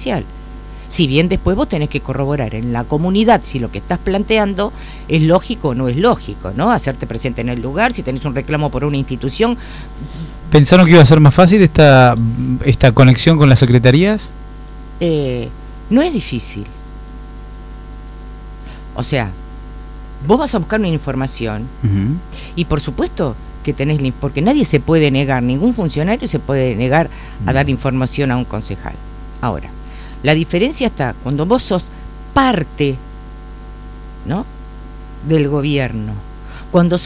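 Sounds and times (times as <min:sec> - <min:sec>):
electrical mains hum: 0:00.0 - 0:37.0
person speaking syllable: 0:21.8 - 0:22.2, 0:27.4 - 0:28.1.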